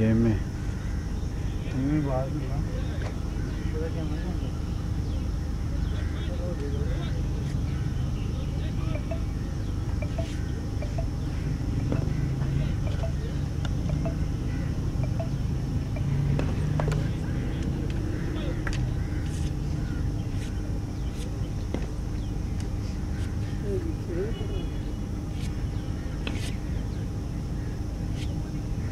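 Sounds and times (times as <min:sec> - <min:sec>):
distant voices: 0:00.0 - 0:28.9.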